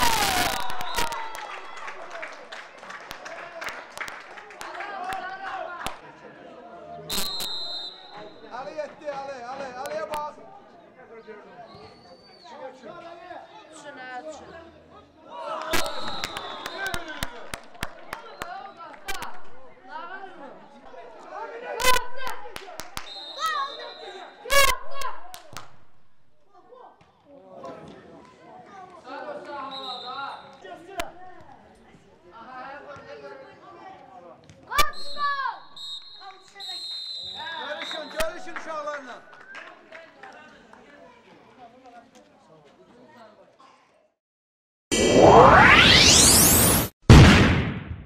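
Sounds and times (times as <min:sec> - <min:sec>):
referee's whistle blast: 0:07.1 - 0:08.5, 0:15.8 - 0:17.2, 0:23.0 - 0:24.2, 0:29.7 - 0:30.6, 0:34.8 - 0:38.4
young footballers shouting: 0:23.3 - 0:25.3
sharp thump: 0:45.8 - 0:48.0.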